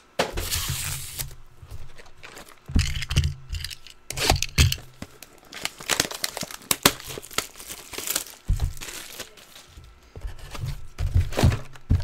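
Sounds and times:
plastic wrap crinkling and tearing: 0.4 - 1.3, 1.9 - 10.0.

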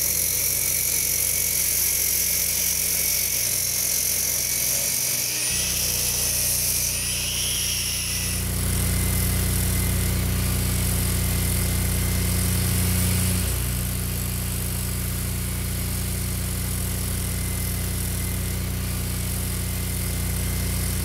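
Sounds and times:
small engine droning: 0.0 - 15.1.

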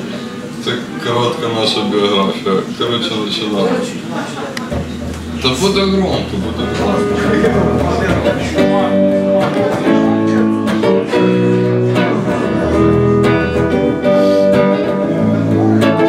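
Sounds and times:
electric guitar strumming chords: 4.7 - 16.0.

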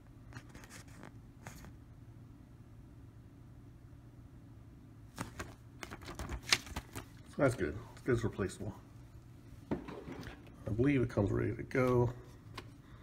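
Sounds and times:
low steady hum: 0.0 - 13.0
paper leaflet rustling: 0.3 - 1.8, 5.1 - 8.2.

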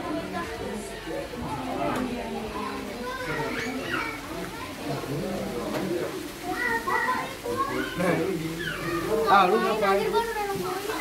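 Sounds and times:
children chattering and calling out: 0.0 - 11.0.

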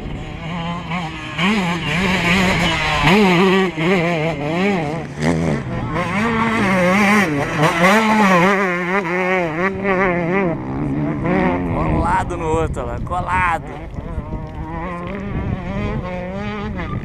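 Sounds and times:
dirt bike engine revving: 0.0 - 17.0.

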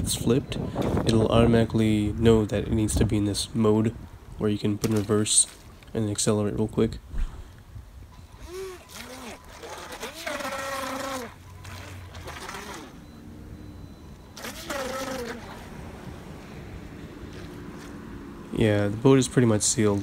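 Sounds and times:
electric motor whining: 8.2 - 13.0, 14.4 - 15.7
propeller splashing water: 8.2 - 13.6, 14.2 - 16.2.

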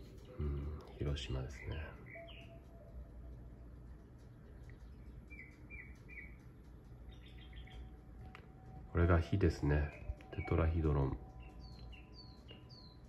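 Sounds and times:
low room hum: 0.0 - 13.0
small bird chirping: 0.0 - 13.0.

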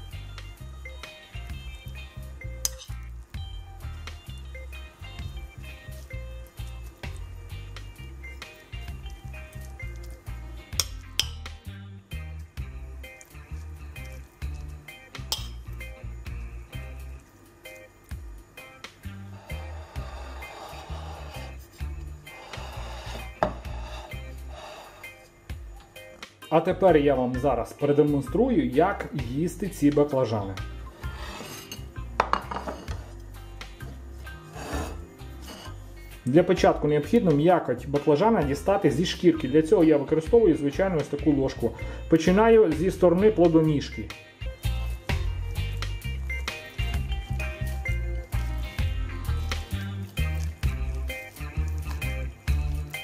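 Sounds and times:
background music with steady beat: 0.0 - 53.0
metal spoon clinking on ceramic: 2.6 - 3.0, 10.7 - 11.5, 15.3 - 15.7.

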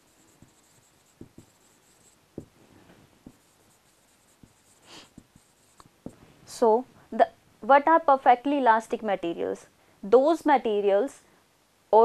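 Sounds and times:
marker writing on whiteboard: 0.0 - 6.2.

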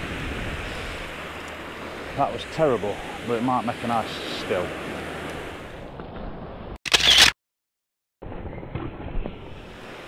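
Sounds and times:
surf: 0.0 - 6.1
faint wind: 0.0 - 7.4, 8.2 - 10.0
camera shutter sound effect: 6.9 - 7.4.

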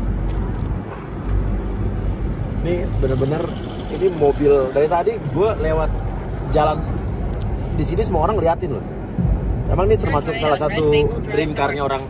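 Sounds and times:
car engine low rumble: 0.0 - 12.0
road noise: 0.0 - 12.0.

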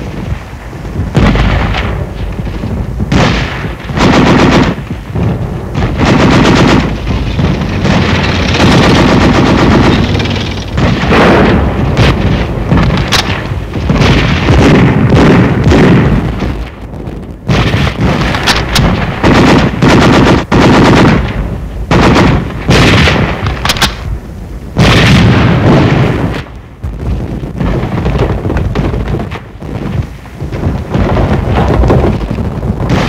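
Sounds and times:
machine gun firing bursts: 3.1 - 4.8, 5.8 - 16.2, 17.5 - 21.3, 21.9 - 24.0.

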